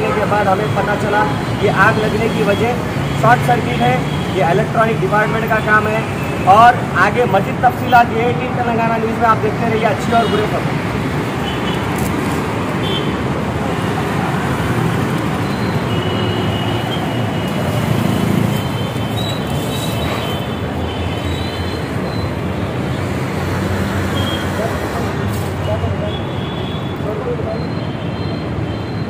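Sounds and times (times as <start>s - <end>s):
road traffic noise: 0.0s - 29.0s.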